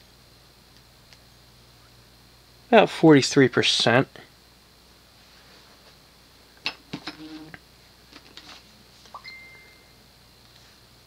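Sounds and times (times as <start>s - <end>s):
ceiling fan hum: 0.0s - 11.0s
steady high tone: 9.2s - 10.0s.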